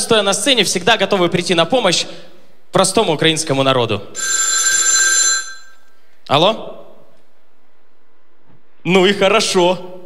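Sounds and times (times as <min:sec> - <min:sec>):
telephone ringing: 0:04.2 - 0:05.9.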